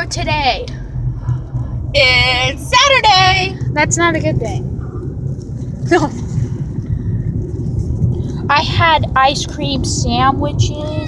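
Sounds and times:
car rumbling on the road: 0.0 - 11.0.

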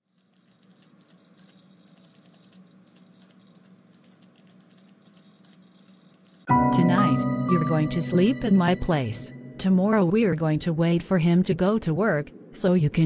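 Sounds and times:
keyboard typing: 0.0 - 6.6
office room tone hum: 0.1 - 13.0.

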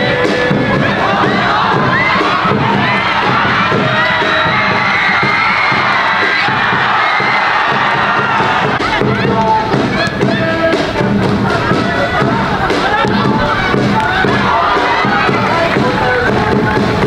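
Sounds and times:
football crowd shouting and cheering: 0.0 - 17.0.

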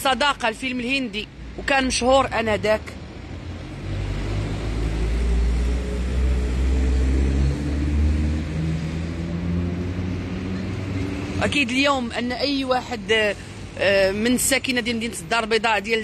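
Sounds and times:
vehicle engine rumbling: 0.0 - 15.9.

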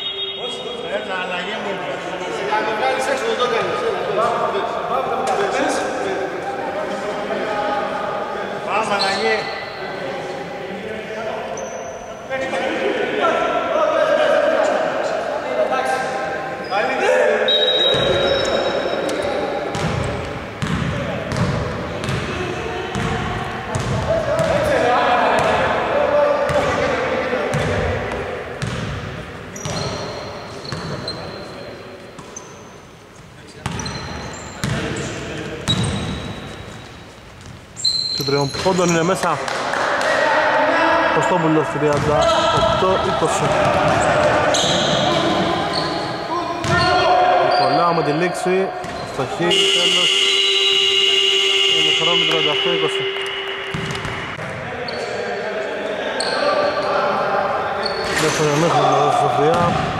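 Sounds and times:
voices calling out: 37.8 - 59.9
basketball bouncing on hardwood: 53.7 - 54.4.

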